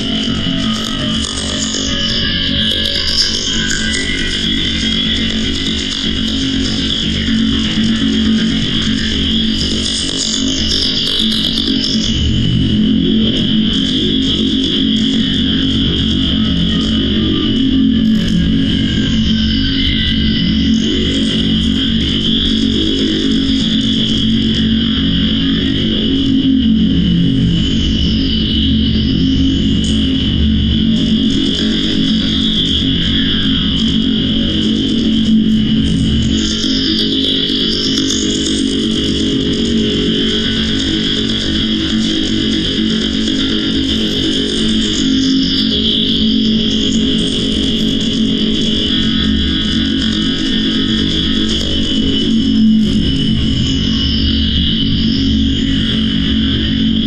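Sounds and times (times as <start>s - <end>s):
distorted electronic drone: 0.0s - 57.0s.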